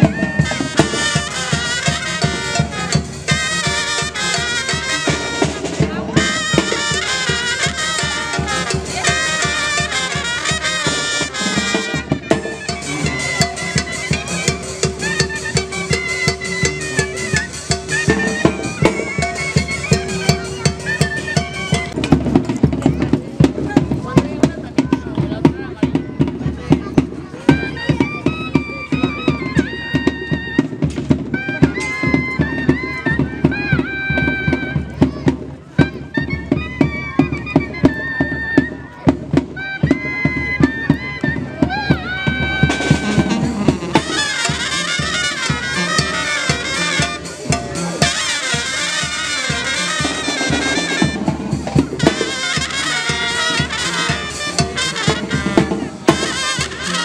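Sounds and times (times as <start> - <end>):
fast steady drum beat: 0.0 - 57.0
full band playing: 0.0 - 57.0
reedy wind instrument melody: 0.0 - 57.0.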